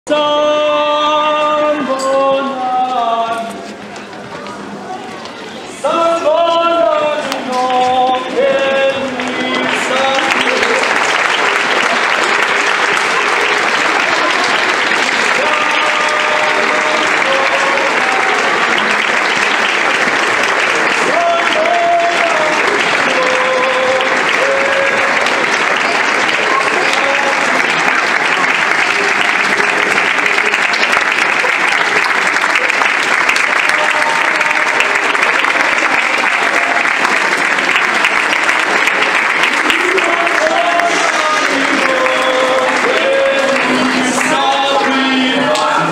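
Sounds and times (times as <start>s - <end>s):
audience applauding: 7.0s - 45.9s.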